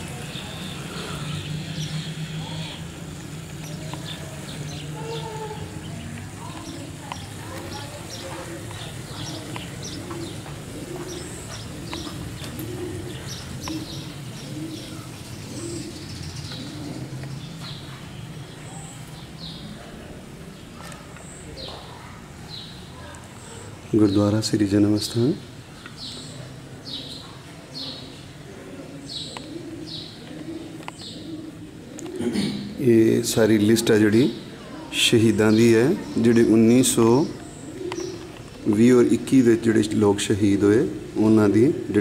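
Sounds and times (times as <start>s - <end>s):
pigeons cooing: 0.0s - 42.0s
small birds chirping: 0.0s - 42.0s.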